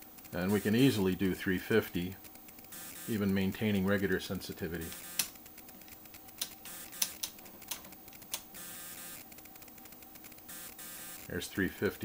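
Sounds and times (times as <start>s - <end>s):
faint electronic hum: 0.0s - 12.0s.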